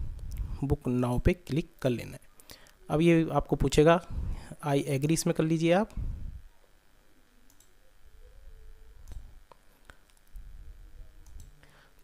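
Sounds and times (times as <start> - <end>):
computer mouse click: 7.5 - 7.7, 9.0 - 9.2.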